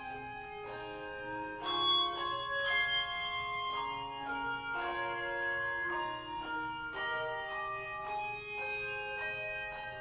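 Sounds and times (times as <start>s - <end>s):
handbell chords ringing: 0.0s - 10.0s.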